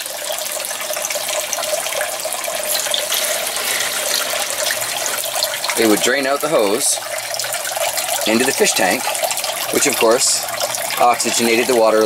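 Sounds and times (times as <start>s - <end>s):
water splashing onto gravel: 0.0s - 12.0s.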